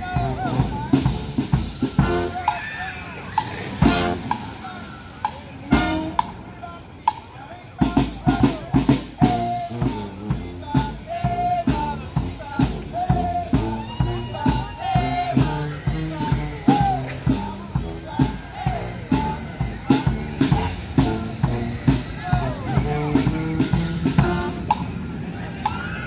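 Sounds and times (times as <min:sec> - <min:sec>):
marching brass band playing: 0:00.0 - 0:06.6, 0:07.8 - 0:25.2.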